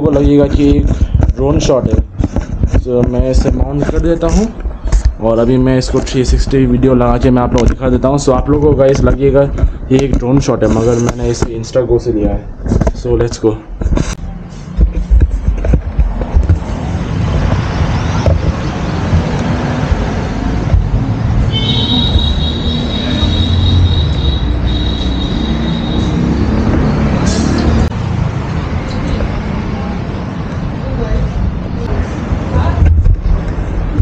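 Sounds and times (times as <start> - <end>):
high whistle-like tone: 21.5 - 26.4.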